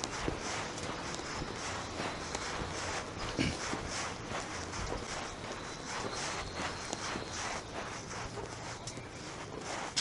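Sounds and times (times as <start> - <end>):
footsteps on cobblestones: 0.0 - 10.0.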